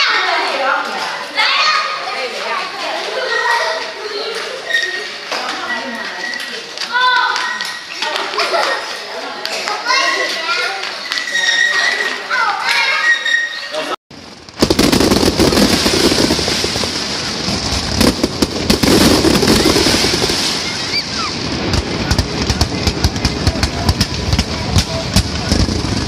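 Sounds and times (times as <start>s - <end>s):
children playing: 0.0s - 14.0s, 18.8s - 23.9s
crowd noise: 0.0s - 26.0s
fireworks crackling and popping: 14.1s - 26.0s.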